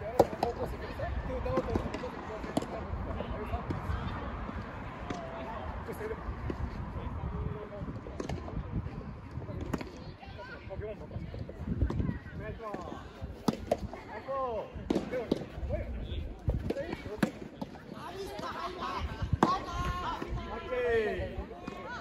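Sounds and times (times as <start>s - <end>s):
players talking and calling: 0.0s - 22.0s.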